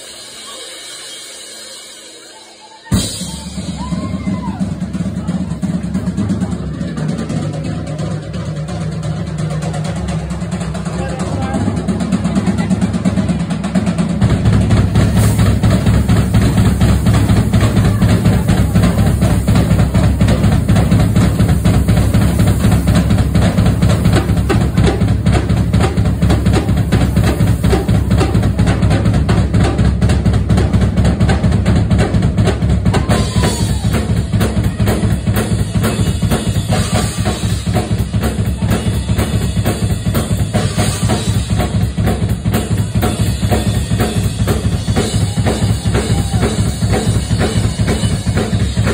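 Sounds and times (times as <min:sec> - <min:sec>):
rock drum kit playing: 0:00.0 - 0:48.9.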